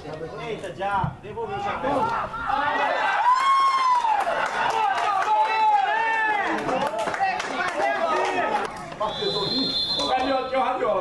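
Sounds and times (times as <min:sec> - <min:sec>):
excited shouting voices: 0:01.5 - 0:08.8.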